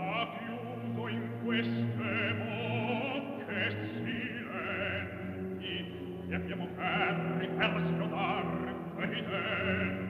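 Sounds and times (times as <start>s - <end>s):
operatic voice singing: 0.0s - 10.0s
orchestral tones: 0.0s - 10.0s.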